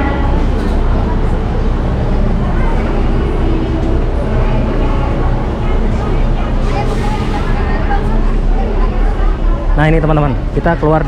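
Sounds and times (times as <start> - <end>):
background voices chattering: 0.0 - 11.0
steady low rumble: 0.0 - 11.0.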